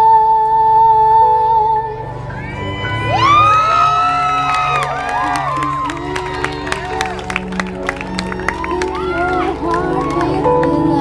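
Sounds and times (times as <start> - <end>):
woman singing long high note: 0.0 - 11.0
audience clapping: 3.7 - 11.0.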